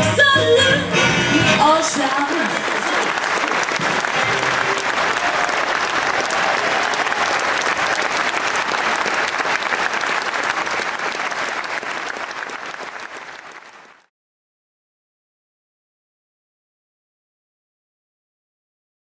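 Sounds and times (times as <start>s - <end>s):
audience applauding: 1.8s - 14.1s.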